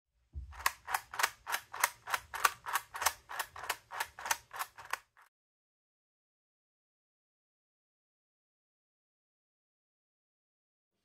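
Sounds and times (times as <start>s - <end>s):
plastic ratchet clicking: 0.6s - 5.2s.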